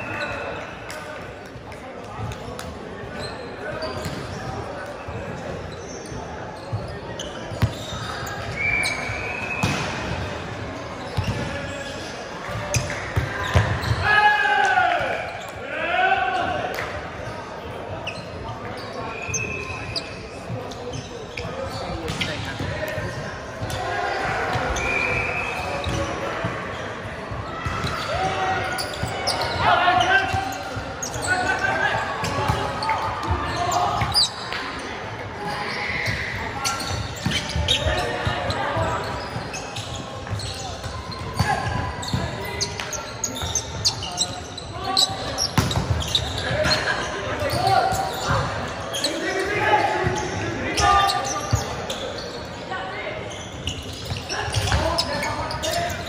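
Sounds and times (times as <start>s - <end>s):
players calling and shouting: 0.0s - 56.0s.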